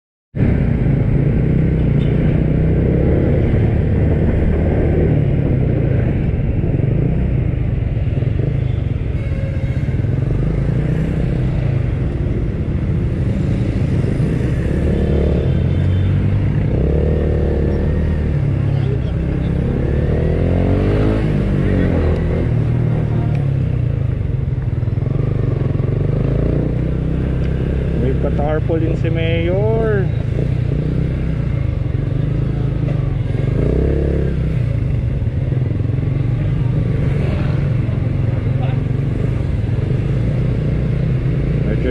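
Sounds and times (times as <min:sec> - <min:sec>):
road and wind noise: 0:00.3 - 0:41.9
motorcycles running nearby: 0:00.4 - 0:41.9.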